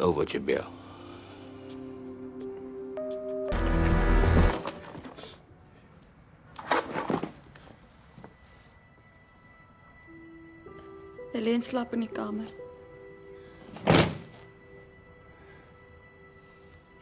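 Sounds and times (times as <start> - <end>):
dramatic background music: 0.0 - 4.9.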